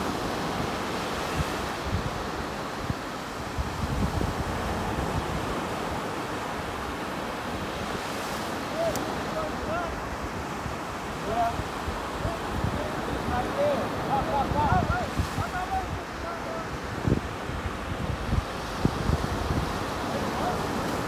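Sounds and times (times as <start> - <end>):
ocean surf breaking: 0.0 - 21.0
wind buffeting microphone: 0.0 - 21.0.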